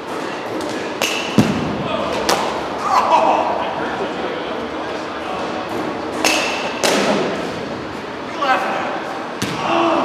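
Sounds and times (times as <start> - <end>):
baseballs striking: 0.1 - 2.8, 5.6 - 7.6, 9.3 - 9.7
voices chattering: 1.8 - 6.8.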